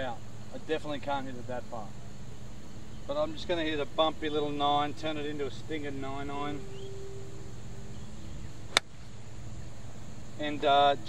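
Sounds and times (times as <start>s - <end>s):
golf club striking ball: 8.7s - 9.1s.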